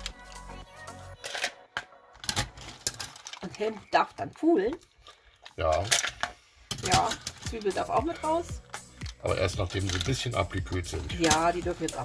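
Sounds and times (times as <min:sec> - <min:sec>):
mussel shells clattering on metal: 0:02.2 - 0:03.9, 0:05.7 - 0:08.0.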